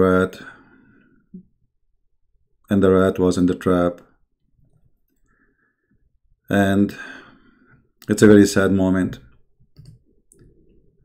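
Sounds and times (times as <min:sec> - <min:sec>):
man speaking: 0:00.0 - 0:00.6, 0:02.7 - 0:04.1, 0:06.5 - 0:07.2, 0:08.0 - 0:09.3
faint room noise: 0:00.0 - 0:11.0
small quiet clicks: 0:09.7 - 0:10.6.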